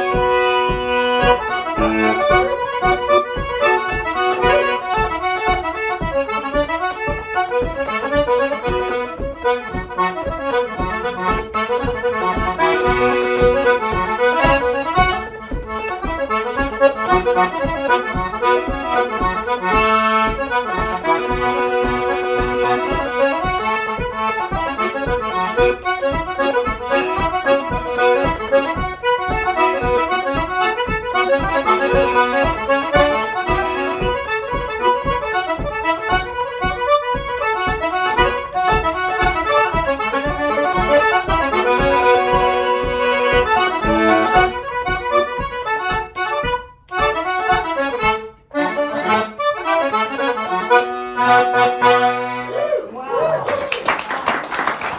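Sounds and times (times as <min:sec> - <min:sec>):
button accordion playing folk tune: 0:00.0 - 0:52.6.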